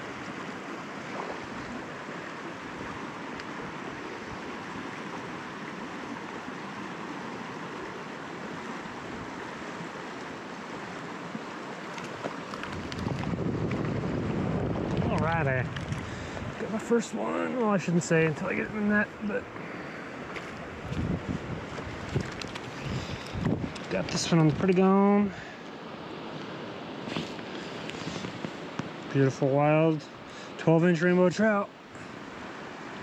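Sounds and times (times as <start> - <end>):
river water rushing: 0.0 - 33.0
wind buffeting microphone: 12.4 - 16.8, 20.2 - 24.9.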